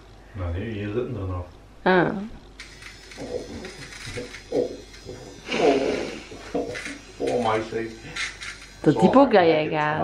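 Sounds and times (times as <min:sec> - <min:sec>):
nose-hair trimmer buzzing: 0:02.6 - 0:10.0.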